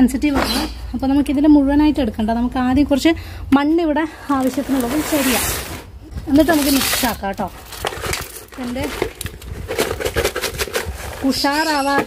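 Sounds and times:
woman speaking: 0.0s - 7.6s, 8.5s - 9.2s, 11.2s - 12.0s
rustling and scraping: 4.3s - 12.0s.

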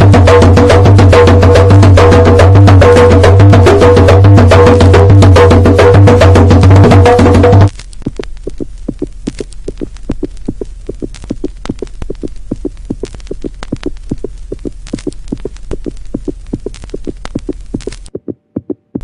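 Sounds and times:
low hum with throbbing pulse: 0.0s - 18.2s
percussive music: 0.0s - 19.0s.

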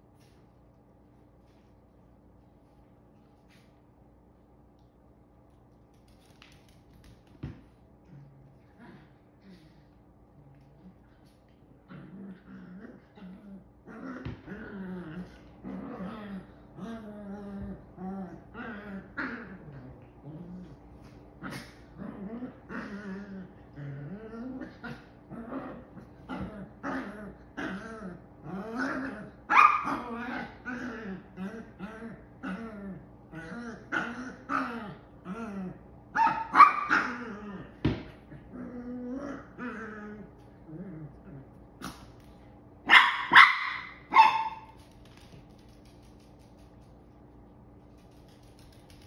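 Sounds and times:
puppy barking: 29.5s - 30.0s, 36.2s - 37.1s, 42.9s - 44.7s.

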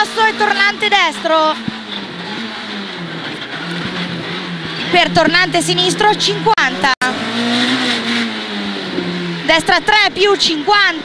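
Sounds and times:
car engine running hard: 0.0s - 11.0s
road and tyre noise: 0.0s - 11.0s.

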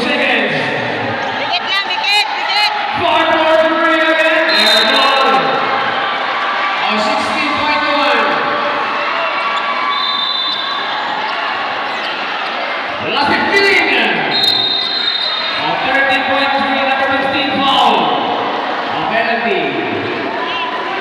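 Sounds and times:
crowd voices din: 0.0s - 21.0s.

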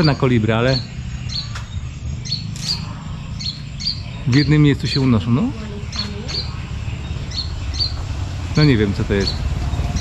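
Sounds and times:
small birds chirping: 0.0s - 10.0s
steady low hum: 0.0s - 10.0s.

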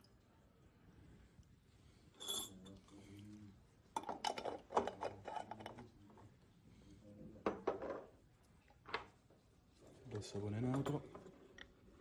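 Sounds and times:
glassware clinking on tiled bench: 2.2s - 2.7s.

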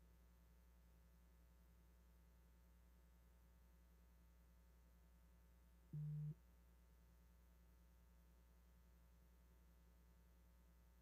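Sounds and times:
faint low hum: 0.0s - 11.0s
low electronic beep: 6.0s - 6.4s.

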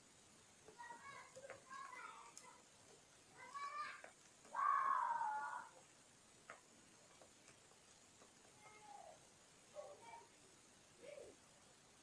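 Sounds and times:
drawn-out vocal calls: 3.2s - 6.0s.

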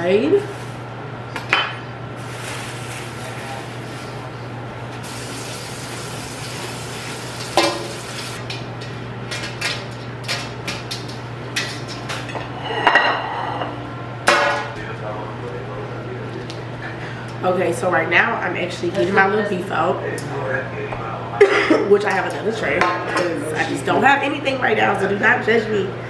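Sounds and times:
steady low hum: 0.0s - 26.0s
dishes and utensils clinking: 7.4s - 14.7s.

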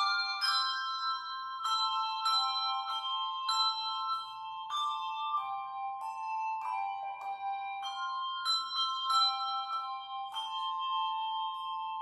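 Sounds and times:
handbell chords ringing: 0.0s - 12.0s.

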